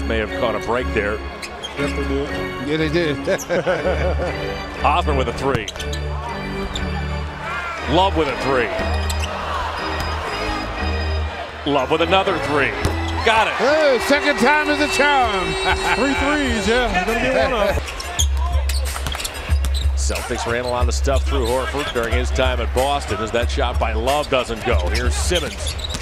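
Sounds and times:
arena music with deep bass: 0:00.0 - 0:25.6
crowd noise: 0:00.0 - 0:26.0
commentator speaking: 0:11.7 - 0:17.8
basketball bouncing on court: 0:12.8 - 0:13.2, 0:17.7 - 0:19.9, 0:25.7 - 0:26.0
bass-heavy music over loudspeakers: 0:14.0 - 0:25.6.

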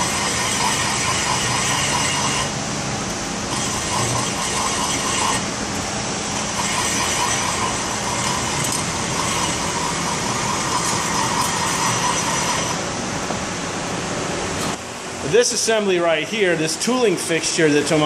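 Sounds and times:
cutting tool scraping metal: 0:00.0 - 0:02.5, 0:03.5 - 0:05.4, 0:06.4 - 0:12.8
metal lathe running: 0:00.0 - 0:02.6, 0:03.4 - 0:12.9.

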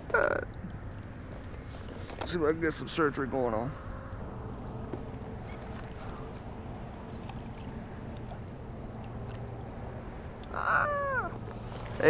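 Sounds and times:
wind: 0:00.0 - 0:12.0
water noise: 0:04.4 - 0:12.0.

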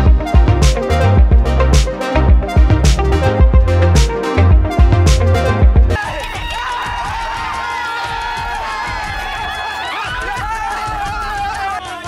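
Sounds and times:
quick steady drum beat: 0:10.1 - 0:12.0.

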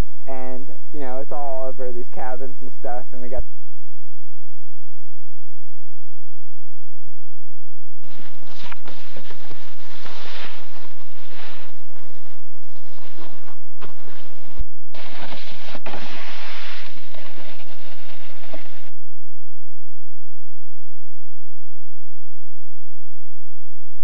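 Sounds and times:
snowboard scraping over snow: 0:08.1 - 0:18.9.

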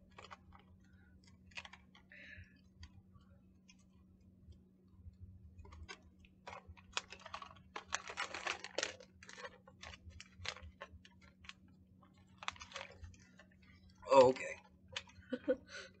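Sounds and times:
plastic snack bag crinkling: 0:00.0 - 0:04.6, 0:05.5 - 0:15.4.

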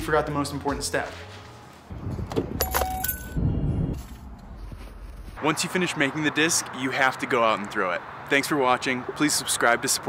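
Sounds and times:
boots stepping through snow: 0:04.0 - 0:05.4.

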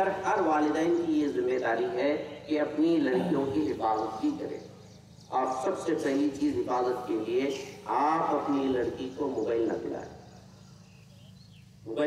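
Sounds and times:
man speaking into microphone: 0:00.0 - 0:04.6, 0:05.3 - 0:10.2.

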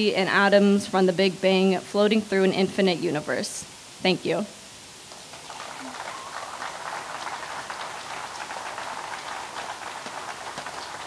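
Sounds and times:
audience applauding: 0:05.1 - 0:11.0.

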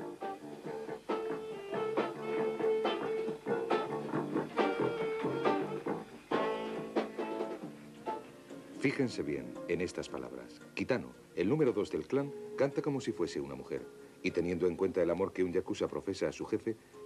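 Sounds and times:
band music with plucked guitar: 0:00.0 - 0:15.3.

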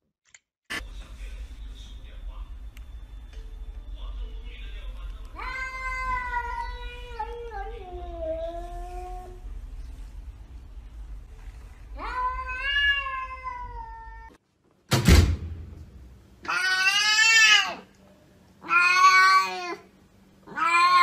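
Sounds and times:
cats meowing: 0:05.3 - 0:09.4, 0:11.9 - 0:14.4, 0:16.4 - 0:17.9, 0:18.6 - 0:21.0.

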